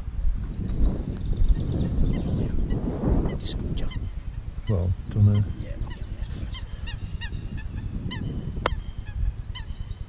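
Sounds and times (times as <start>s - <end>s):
wind rumbling on microphone: 0.0s - 10.0s
faint bird calls: 0.4s - 10.0s.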